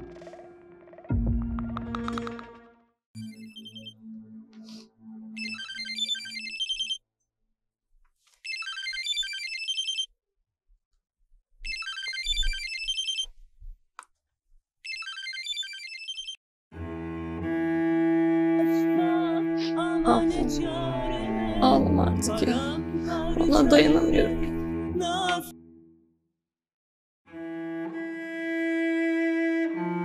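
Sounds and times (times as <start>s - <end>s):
mobile phone ringtone: 5.3s - 7.0s, 8.5s - 10.1s.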